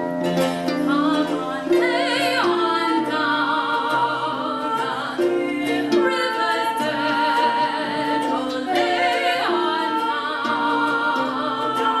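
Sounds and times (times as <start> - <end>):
harp and ukulele accompaniment: 0.0 - 12.0
women singing lullaby in harmony: 0.0 - 12.0.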